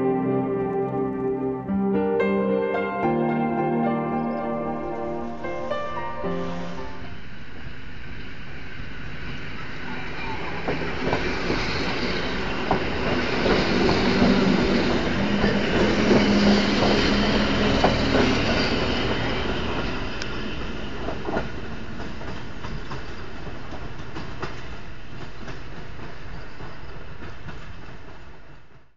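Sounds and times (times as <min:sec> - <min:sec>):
low steady train hum: 0:00.0 - 0:28.9
train wheels clicking over rail joints: 0:10.5 - 0:28.9.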